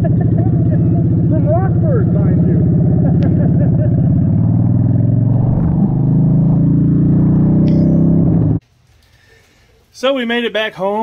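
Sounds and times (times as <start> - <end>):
motorcycle engine running: 0.0 - 8.6.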